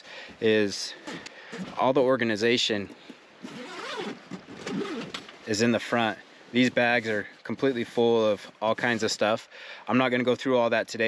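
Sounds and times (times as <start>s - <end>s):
zipper being pulled open: 3.4s - 5.3s.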